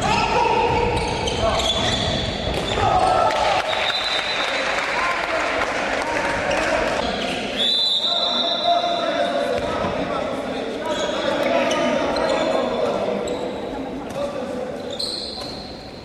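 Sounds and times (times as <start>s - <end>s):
players' voices echoing: 0.0s - 16.0s.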